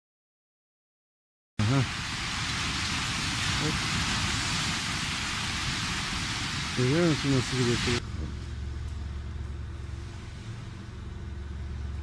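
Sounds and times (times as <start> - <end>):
car engine running: 6.8 - 12.0.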